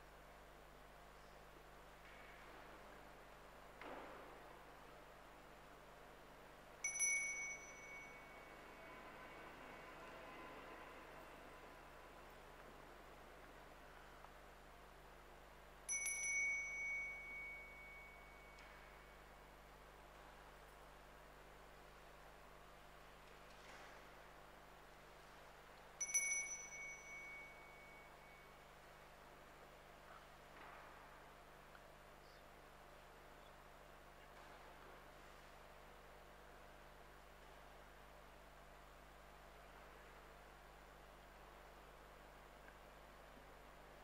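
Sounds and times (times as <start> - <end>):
altar bell ringing: 6.8 - 9.3, 15.9 - 19.3, 26.0 - 28.8.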